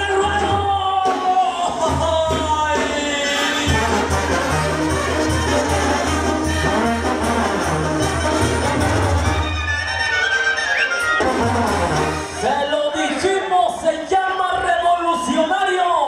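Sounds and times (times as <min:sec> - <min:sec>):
trumpets and trombones playing: 0:02.7 - 0:13.2.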